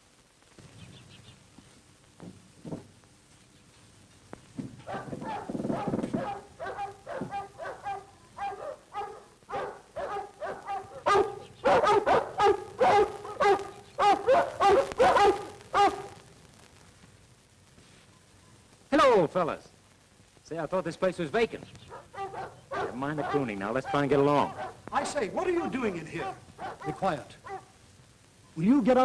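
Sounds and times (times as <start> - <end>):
large dogs barking: 4.8 - 16.2, 21.9 - 27.8.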